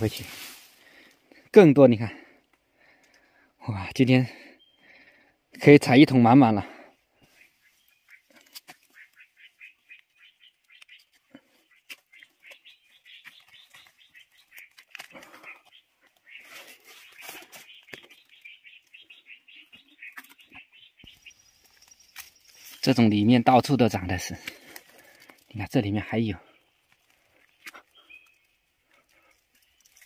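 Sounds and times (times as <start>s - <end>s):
rapid bird chirps: 4.5s - 5.4s, 7.0s - 23.5s, 26.5s - 30.0s.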